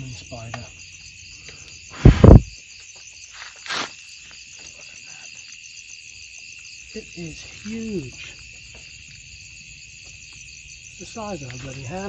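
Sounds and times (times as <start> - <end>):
night insects trilling: 0.0 - 12.0.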